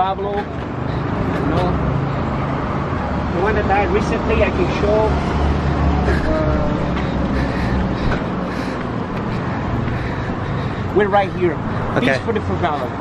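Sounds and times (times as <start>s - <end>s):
street traffic: 0.0s - 13.0s
man's voice: 10.9s - 13.0s.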